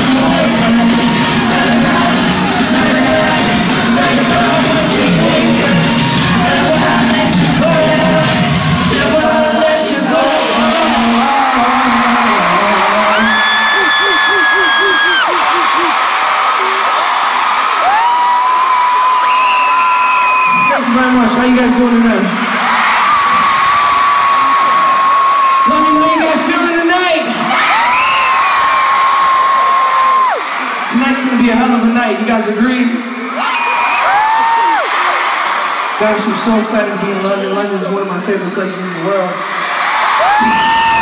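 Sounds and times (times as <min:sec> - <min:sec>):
live pop music and singing: 0:00.0 - 0:15.9
crowd cheering: 0:00.0 - 0:41.0
high-pitched screams: 0:10.8 - 0:17.2, 0:39.7 - 0:41.0.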